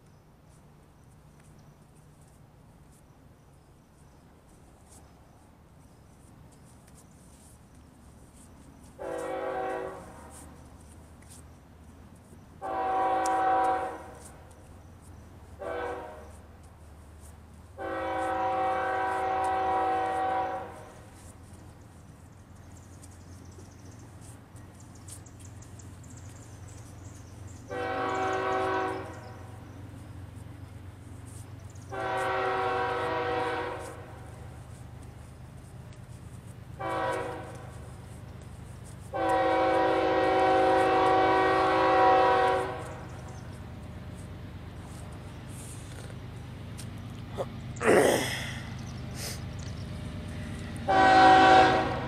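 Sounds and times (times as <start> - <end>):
train rumble: 0.0 - 52.0
locomotive air horn blasts: 9.0 - 10.6, 12.6 - 14.4, 15.6 - 16.5, 17.8 - 21.1, 27.6 - 29.6, 31.9 - 34.4, 36.8 - 37.9, 39.1 - 43.6, 50.8 - 52.0.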